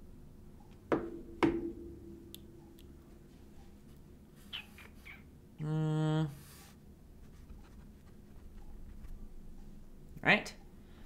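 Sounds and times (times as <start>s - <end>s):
hard object knocks: 0.9s - 2.4s.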